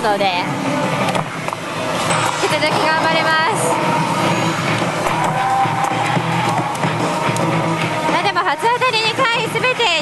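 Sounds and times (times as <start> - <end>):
loud music with guitar: 1.9 - 10.0.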